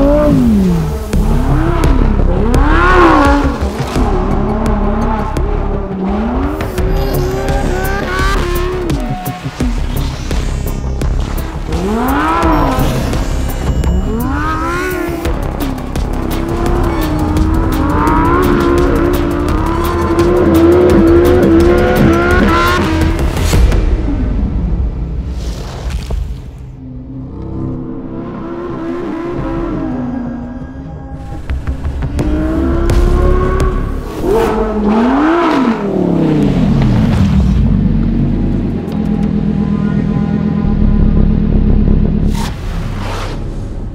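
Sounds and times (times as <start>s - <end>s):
car engine revving: 0.0s - 24.2s, 26.8s - 43.9s
background music: 0.0s - 43.9s
whoosh: 23.2s - 27.7s.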